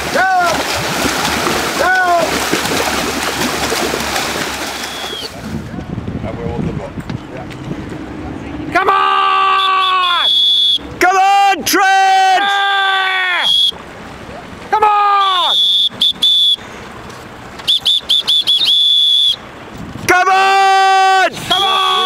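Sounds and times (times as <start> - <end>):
whistle chirps: 4.7 - 5.4, 9.6 - 10.9, 13.4 - 13.8, 15.2 - 16.6, 17.6 - 19.4
air horn blasts: 9.5 - 10.9, 15.1 - 16.6, 21.4 - 22.0.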